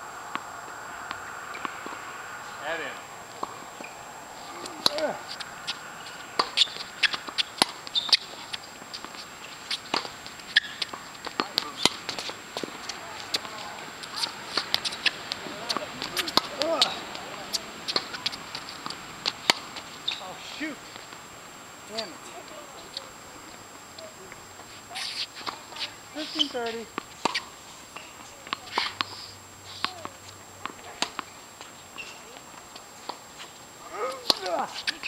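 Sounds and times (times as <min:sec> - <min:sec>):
ball bouncing on court: 0:00.3 - 0:02.0, 0:04.6 - 0:20.2, 0:33.9 - 0:35.0
racket hitting tennis ball: 0:00.3 - 0:20.3, 0:24.9 - 0:31.3, 0:33.8 - 0:35.0.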